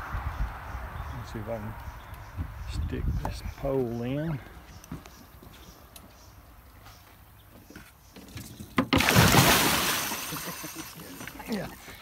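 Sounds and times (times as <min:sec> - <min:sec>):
fish thrashing splashing water: 0:09.0 - 0:11.4.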